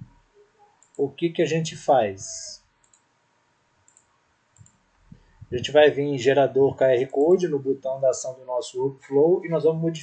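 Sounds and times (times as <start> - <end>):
computer mouse clicks: 0.7 - 1.0, 2.8 - 3.1, 3.8 - 5.4.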